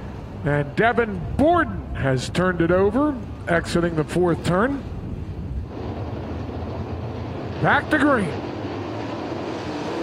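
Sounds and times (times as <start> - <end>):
race car engines rumbling: 0.0 - 10.0
wind noise on microphone: 1.1 - 7.6.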